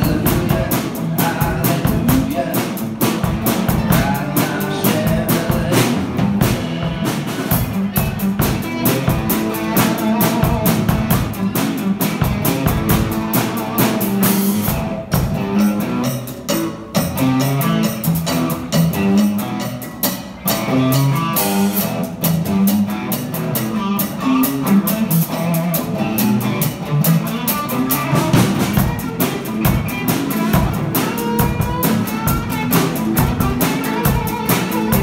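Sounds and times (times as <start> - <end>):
drum kit: 0.0 - 35.0
electric guitars: 0.0 - 35.0.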